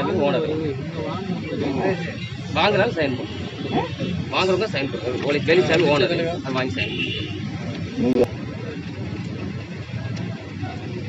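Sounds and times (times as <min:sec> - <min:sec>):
background traffic: 0:00.0 - 0:11.0
crowd noise: 0:00.0 - 0:11.0.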